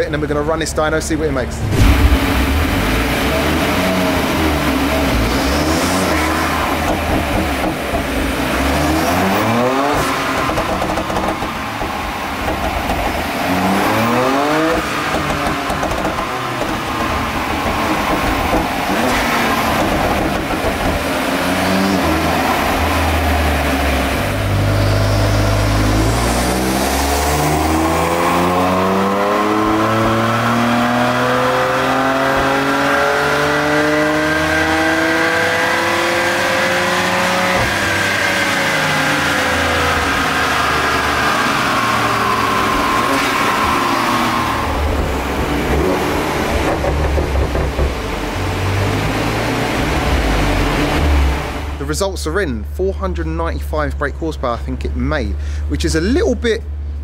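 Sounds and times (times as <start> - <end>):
engine misfire: 1.5 - 31.5
car engine revving on dyno: 1.6 - 51.8.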